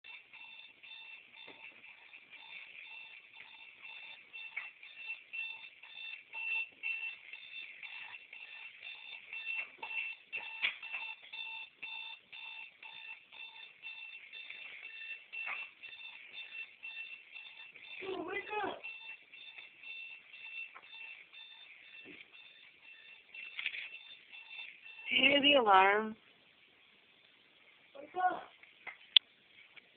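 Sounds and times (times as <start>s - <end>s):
alarm clock beeping: 0.0s - 26.2s
person's voice: 18.0s - 18.8s.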